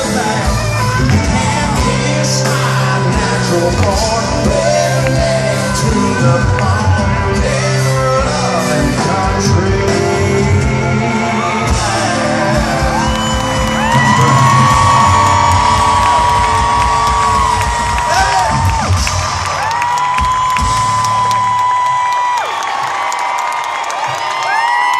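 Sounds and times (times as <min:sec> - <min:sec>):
live country band playing: 0:00.0 - 0:22.8
crowd whooping and cheering: 0:11.1 - 0:24.9.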